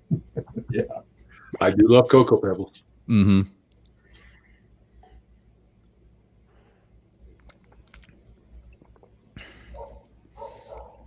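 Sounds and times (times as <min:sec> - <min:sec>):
sipping and swallowing clicks: 0:03.6 - 0:04.0, 0:07.3 - 0:09.4.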